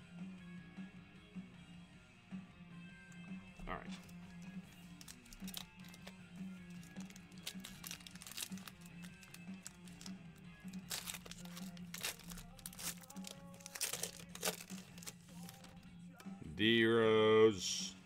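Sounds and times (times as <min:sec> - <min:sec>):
quiet background music: 0:00.0 - 0:18.0
foil wrapper crinkling and tearing: 0:04.0 - 0:06.1, 0:06.7 - 0:15.8.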